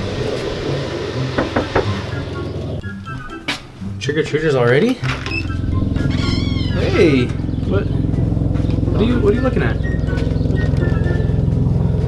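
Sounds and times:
vehicle engine idling: 0:00.0 - 0:02.8, 0:05.2 - 0:12.0.

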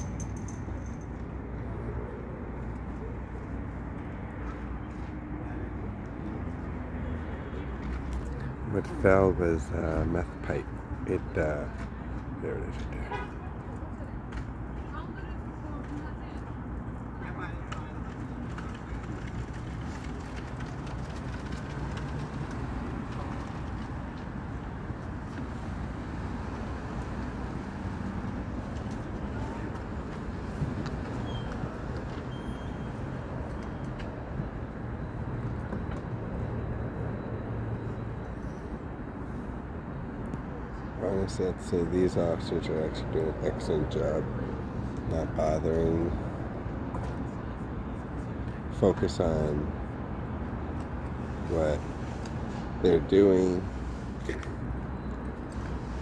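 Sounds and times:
traffic rumble: 0:00.0 - 0:56.0.

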